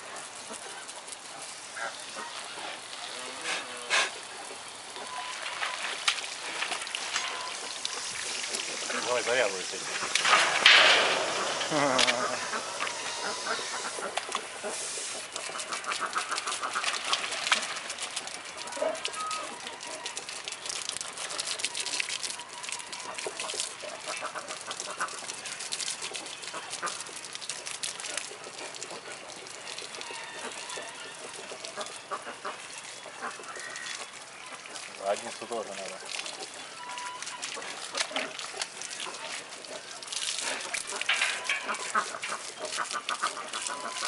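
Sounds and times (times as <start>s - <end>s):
hose water spraying: 0.0s - 44.0s.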